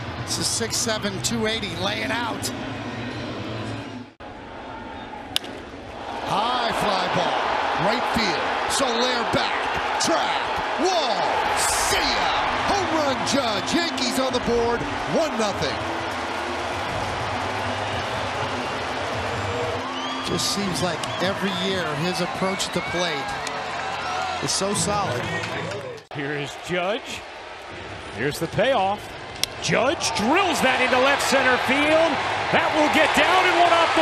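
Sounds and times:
ballpark crowd noise: 0.0s - 34.0s.

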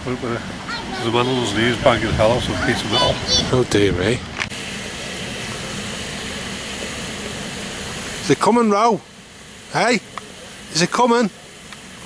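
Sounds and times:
steam hissing from locomotive: 0.1s - 12.0s.

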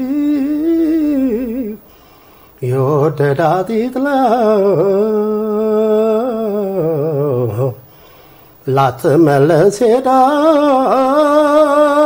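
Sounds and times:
man singing a cappella: 0.0s - 2.0s, 2.6s - 8.0s, 8.6s - 12.0s.

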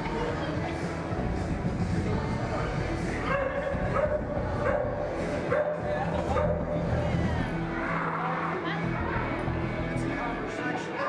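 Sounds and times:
background music: 0.0s - 11.0s
dog barking: 3.3s - 6.7s.

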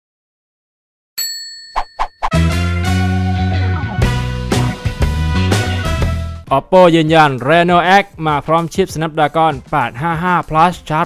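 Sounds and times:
bell-like ding: 1.2s - 2.4s.

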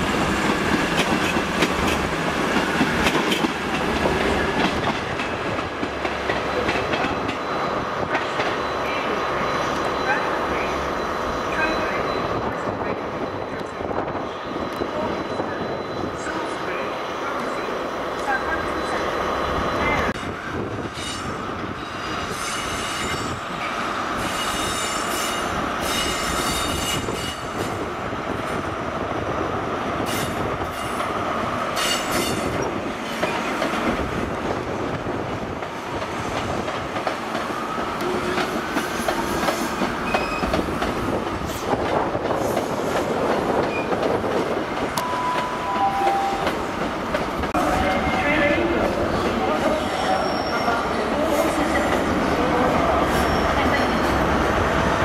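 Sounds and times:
train wheels squealing: 20.9s - 23.5s, 24.2s - 27.5s, 39.6s - 40.7s, 49.8s - 51.0s, 53.0s - 54.1s.

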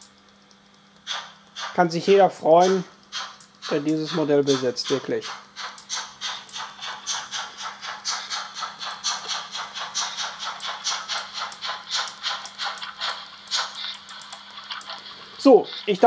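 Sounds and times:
model steam locomotive chuffing: 1.1s - 16.0s.

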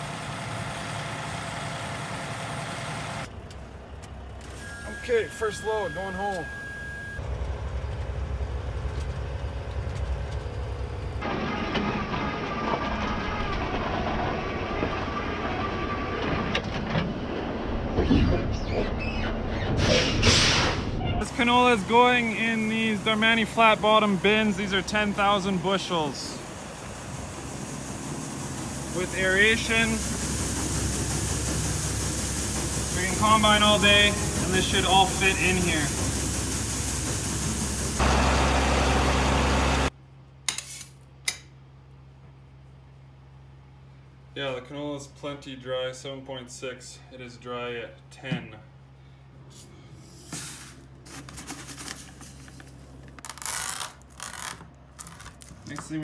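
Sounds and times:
aeration fan humming: 21.2s - 45.4s
seeds rubbing and rattling: 51.1s - 55.9s.

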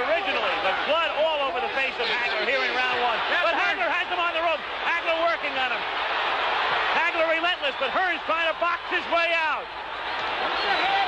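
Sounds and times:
man talking: 0.0s - 5.8s, 6.9s - 9.6s
crowd din: 0.0s - 11.0s.

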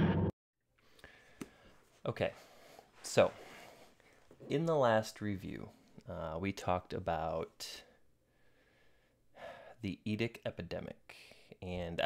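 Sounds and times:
man breathing in: 0.8s - 1.8s, 8.2s - 9.8s
man speaking: 2.0s - 2.4s, 3.0s - 3.4s, 4.4s - 8.0s, 9.8s - 12.0s.

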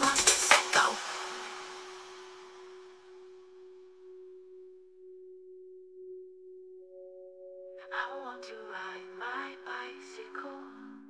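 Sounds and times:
steady electronic tone: 1.0s - 11.0s.

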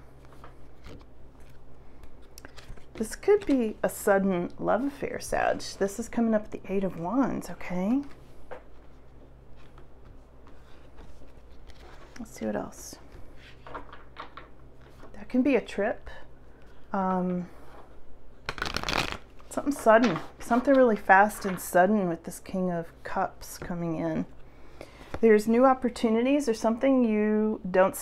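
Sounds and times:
low steady hum: 0.0s - 28.0s
cards shuffling: 0.2s - 3.7s, 18.4s - 20.8s
cards clicking and rustling: 18.5s - 19.2s.

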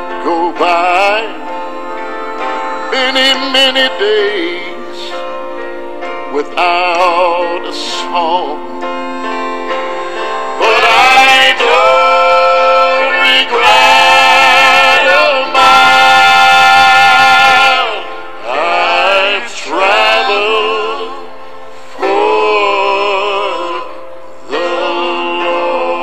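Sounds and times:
man singing gospel with vibrato: 0.0s - 5.4s, 6.3s - 9.0s, 9.7s - 26.0s
instrumental backing: 0.0s - 26.0s.

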